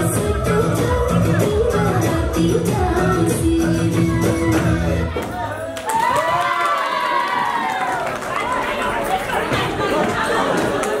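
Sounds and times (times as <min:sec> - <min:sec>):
audience chatter: 0:07.1 - 0:11.0.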